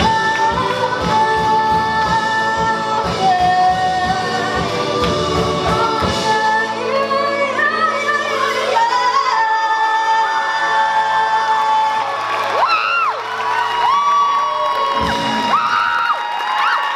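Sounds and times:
rock band holding a chord: 0:00.0 - 0:07.2
voices whooping: 0:11.0 - 0:16.9.

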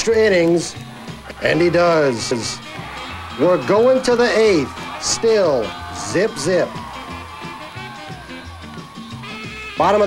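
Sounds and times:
quiet instrumental music: 0:00.0 - 0:10.0.

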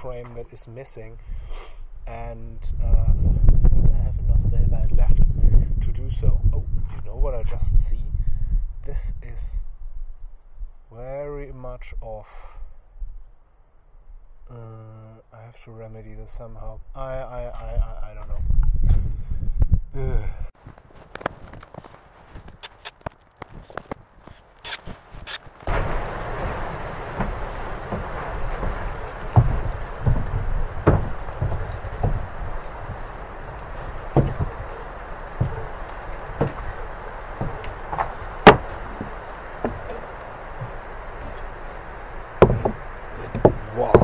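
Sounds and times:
timber knocks and thumps: 0:20.6 - 0:44.0
steady hiss: 0:24.6 - 0:44.0.

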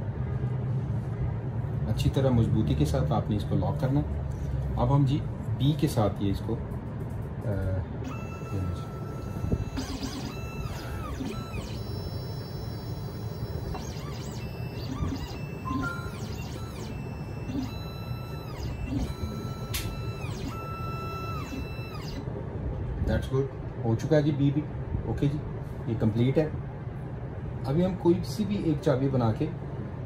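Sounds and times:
stepper motors whining: 0:08.0 - 0:22.3
sharp machine click: 0:09.5 - 0:22.2.

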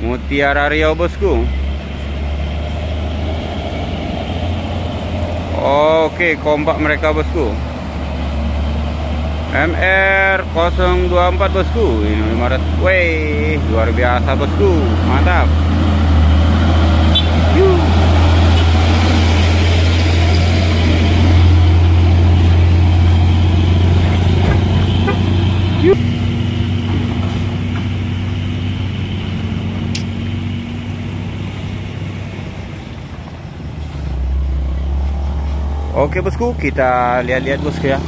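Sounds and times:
another vehicle engine: 0:00.0 - 0:38.0
diesel truck engine droning: 0:00.0 - 0:38.0.

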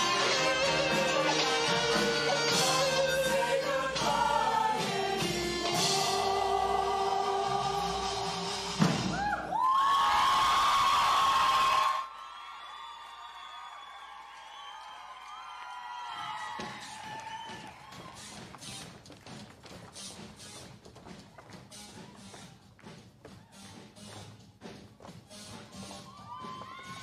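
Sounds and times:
choir and band music: 0:00.0 - 0:09.2.

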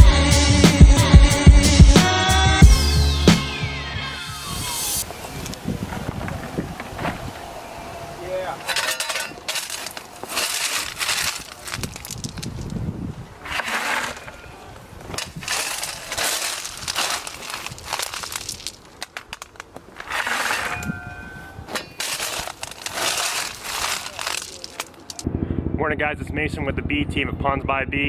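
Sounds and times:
shovel scooping crunching stones: 0:08.6 - 0:25.2.

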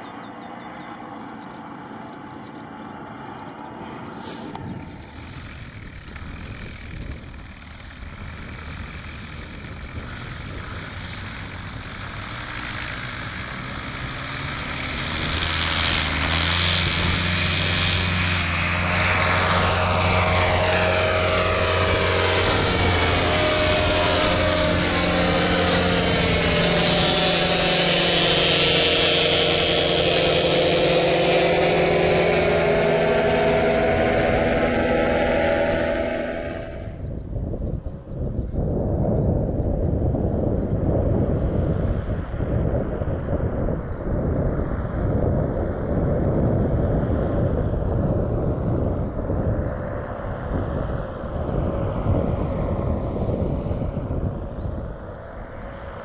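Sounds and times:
paramotor engine flying by: 0:00.0 - 0:56.0.

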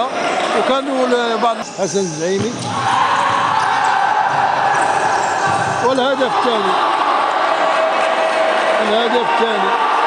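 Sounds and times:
echoing voices: 0:00.0 - 0:10.0.

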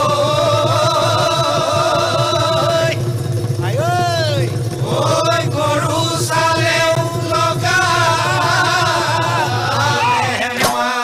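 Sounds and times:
voices singing and chanting: 0:00.0 - 0:11.0.

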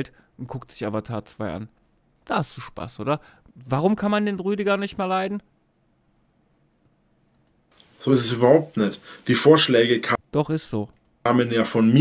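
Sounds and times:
computer mouse clicks: 0:06.8 - 0:07.9, 0:10.9 - 0:11.2.

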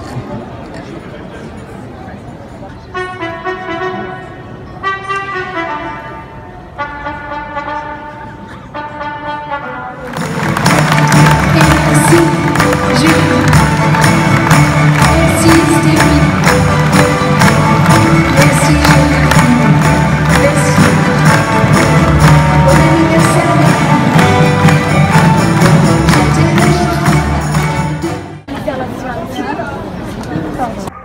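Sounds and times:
orchestra playing: 0:03.0 - 0:28.5
drums and percussion beat: 0:10.1 - 0:28.4.

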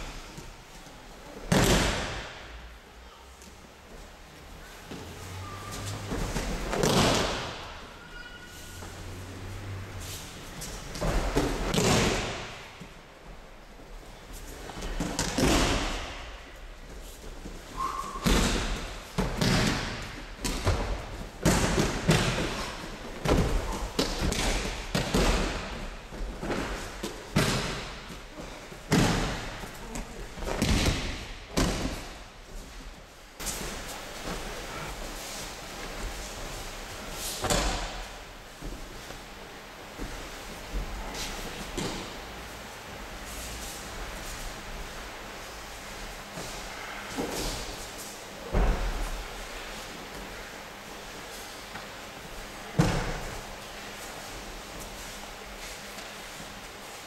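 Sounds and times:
bodies thudding on mats: 0:05.7 - 0:07.8, 0:10.6 - 0:12.6, 0:18.2 - 0:32.7, 0:48.4 - 0:49.4.

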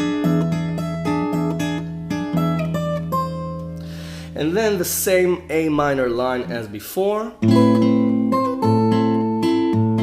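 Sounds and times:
fingerstyle acoustic guitar: 0:00.0 - 0:10.0.

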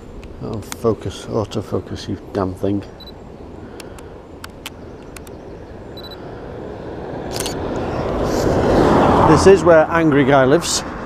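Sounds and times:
rising rush of noise: 0:03.0 - 0:11.0
camera autofocus beep: 0:06.0 - 0:06.2, 0:07.3 - 0:07.6
camera shutter clicks: 0:07.3 - 0:07.6.

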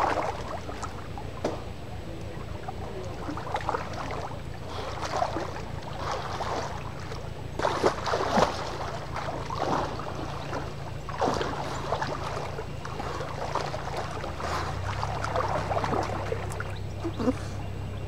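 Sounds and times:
swimmer splashing water: 0:00.0 - 0:18.0.

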